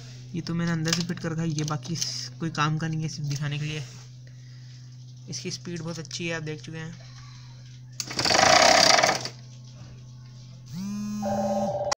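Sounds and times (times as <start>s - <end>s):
steady low hum: 0.0s - 11.9s
rising electronic tone: 10.8s - 11.9s.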